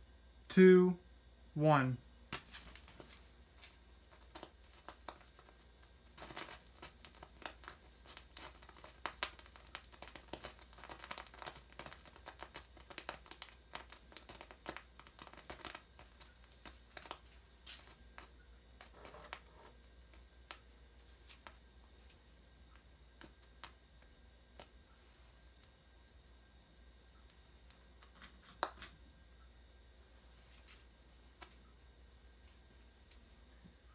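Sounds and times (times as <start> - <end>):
paper burning with crackling: 2.3 - 29.2, 30.2 - 33.9.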